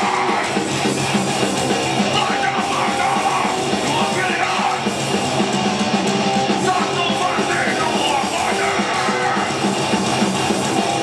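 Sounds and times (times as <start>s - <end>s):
vocalist yelling: 0.0s - 0.6s, 2.1s - 4.9s, 6.6s - 9.6s
bass: 0.0s - 11.0s
distorted electric guitars: 0.0s - 11.0s
drums: 0.0s - 11.0s.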